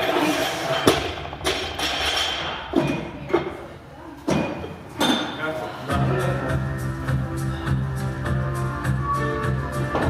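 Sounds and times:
background music: 5.9 - 10.0.

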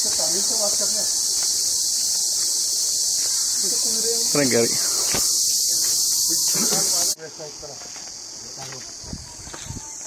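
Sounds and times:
faint insect hiss: 0.0 - 10.0
high-pitched insect chorus: 0.0 - 10.0.

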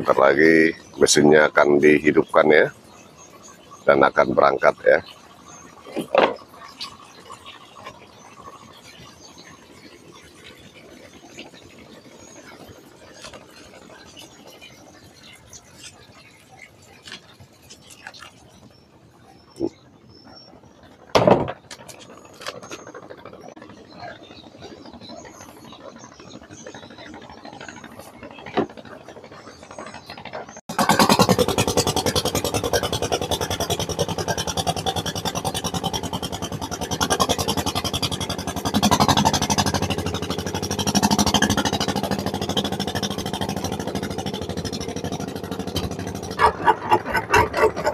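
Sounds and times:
boat engine chugging: 0.0 - 47.9.

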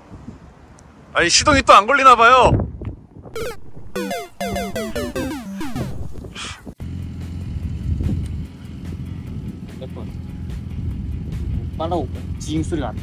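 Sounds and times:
motorcycle engine idling: 6.9 - 11.8.

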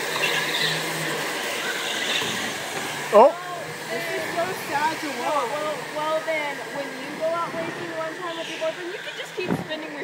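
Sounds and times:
go-karts driving past: 0.0 - 10.0
whir of kart motors and tyres: 0.0 - 10.0.

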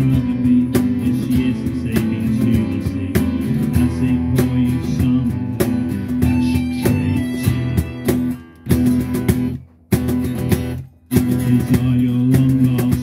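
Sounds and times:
acoustic guitar strumming: 0.0 - 13.0
electric bass: 0.0 - 13.0
held low notes: 0.0 - 13.0.

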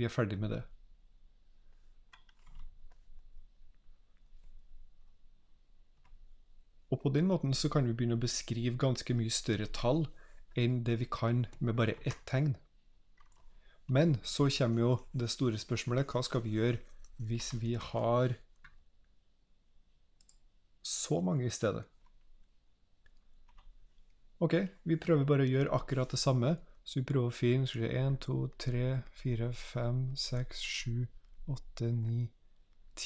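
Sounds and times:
man talking: 0.0 - 0.8, 6.9 - 12.7, 13.9 - 18.5, 20.8 - 22.0, 24.4 - 32.4
stylus clicking on drawing tablet: 2.0 - 4.3
man's voice: 6.9 - 12.6, 13.9 - 18.4, 24.4 - 32.3.

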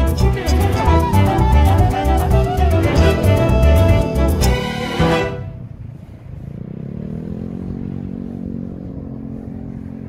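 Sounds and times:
engine speeding up: 0.0 - 10.0.

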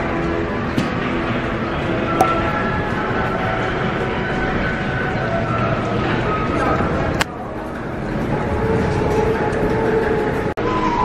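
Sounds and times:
subway train rumbling: 0.0 - 11.0.

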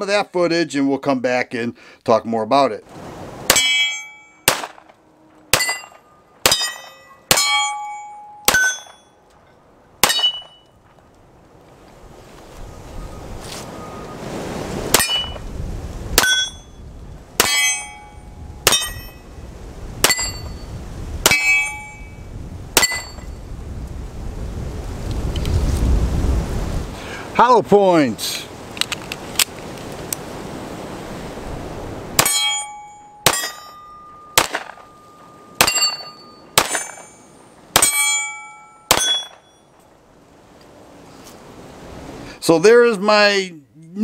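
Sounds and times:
steel target ringing: 3.5 - 9.3, 10.0 - 10.8, 14.9 - 15.5, 16.2 - 16.8, 17.4 - 19.3, 20.0 - 23.4, 32.2 - 39.8
pistol shots: 4.4 - 4.9, 34.4 - 34.9, 35.6 - 37.1.

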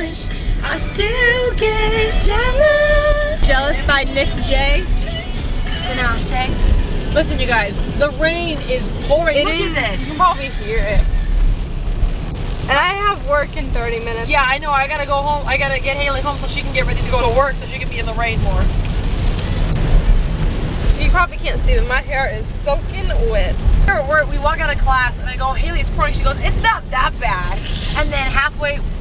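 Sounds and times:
loud low rumble: 0.0 - 14.2
engine and road rumble: 0.0 - 29.0
pop song on car radio: 0.0 - 29.0
person speaking: 8.3 - 11.0, 27.4 - 28.4.

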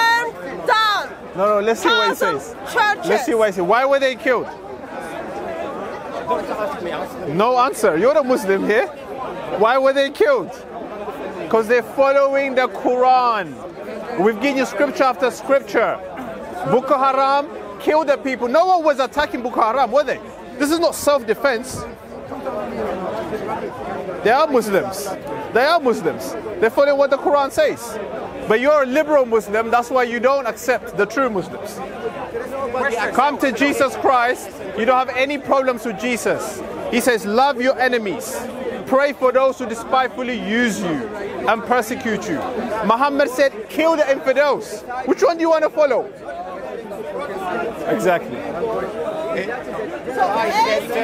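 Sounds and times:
crowd of overlapping voices: 0.0 - 51.0
people chattering: 0.0 - 51.0.

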